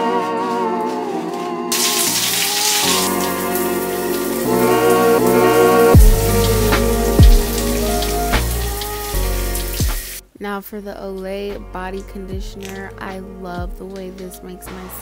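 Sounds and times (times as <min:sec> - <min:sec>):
background music chords: 0:00.0 - 0:10.4
shower spray hissing: 0:01.7 - 0:10.2
bass drum hits: 0:05.9 - 0:10.1.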